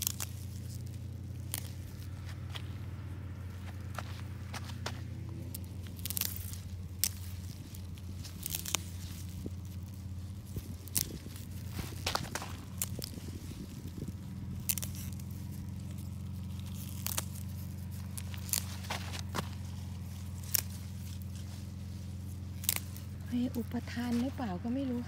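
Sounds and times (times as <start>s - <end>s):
plant stems snapping: 0.0s - 2.8s, 3.5s - 21.7s, 22.4s - 24.4s
leaves rustling: 0.0s - 25.0s.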